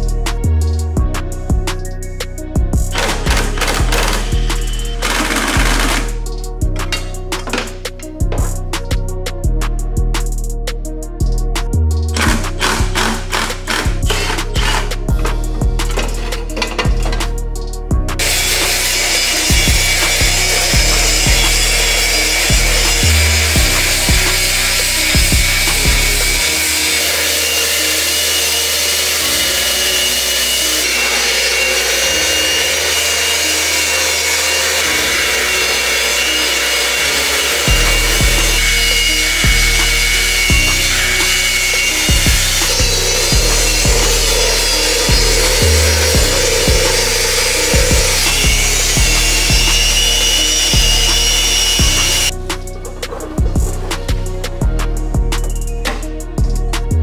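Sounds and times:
background music with a beat: 0:00.0 - 0:57.0
angle grinder scouring metal: 0:02.9 - 0:08.2, 0:12.2 - 0:17.4, 0:18.2 - 0:52.3.

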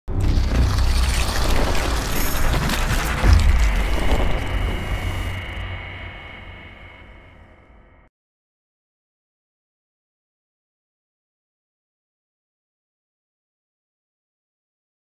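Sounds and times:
crackling whooshing effects: 0:00.1 - 0:07.2
deep hit: 0:00.1 - 0:08.1
long ringing tail: 0:03.5 - 0:08.1.

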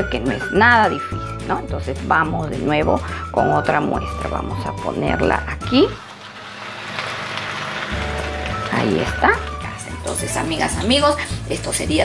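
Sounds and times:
batter sizzling in hot oil: 0:05.6 - 0:10.8.

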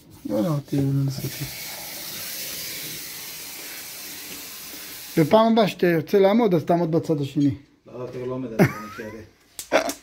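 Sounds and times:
steady hiss: 0:00.0 - 0:06.1.

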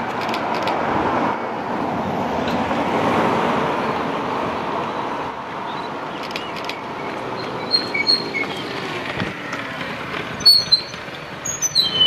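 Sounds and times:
birds chirping: 0:05.6 - 0:09.0, 0:10.4 - 0:12.0.

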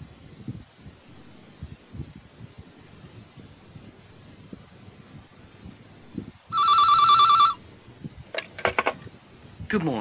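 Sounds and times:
telephone ringing: 0:06.5 - 0:07.6.

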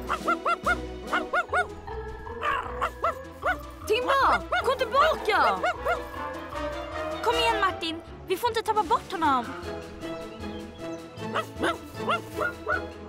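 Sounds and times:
cartoon dog barking and yipping: 0:00.0 - 0:06.3, 0:11.3 - 0:12.9
background music with steady beat: 0:00.0 - 0:13.0.

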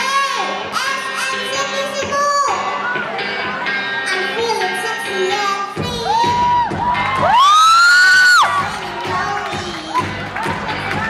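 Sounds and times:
girl singing pop song into microphone: 0:00.0 - 0:02.7, 0:04.0 - 0:06.8, 0:08.0 - 0:11.0
backing track: 0:00.0 - 0:11.0
audience cheering and shouting: 0:02.0 - 0:05.1, 0:05.7 - 0:11.0.

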